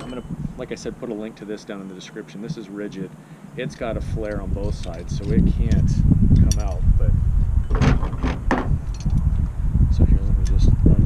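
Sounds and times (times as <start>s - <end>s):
wind buffeting microphone: 0.0s - 1.7s, 2.4s - 11.0s
metallic clicks of tool: 4.3s - 6.8s.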